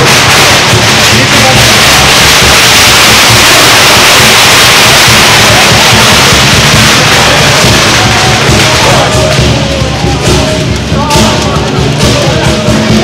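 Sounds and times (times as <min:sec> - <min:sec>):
clashing cymbals and gongs: 0:00.0 - 0:13.0
drum beats: 0:00.0 - 0:13.0.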